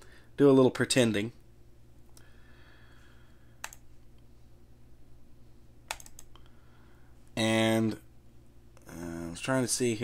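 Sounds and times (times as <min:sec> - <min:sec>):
faint steady hum: 0:00.0 - 0:10.0
computer mouse clicks: 0:03.6 - 0:03.9, 0:05.9 - 0:06.4.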